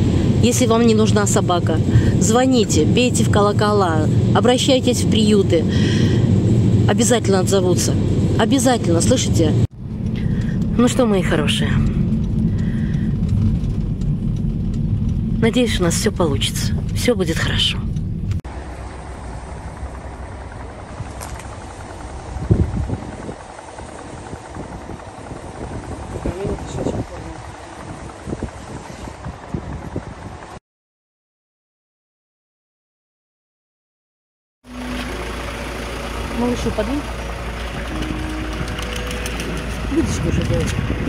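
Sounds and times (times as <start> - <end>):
car cabin engine and road rumble: 0.0 - 30.5, 34.7 - 41.0
outdoor low rumble: 0.0 - 30.6, 34.6 - 41.0
brief low sound: 34.7 - 41.0.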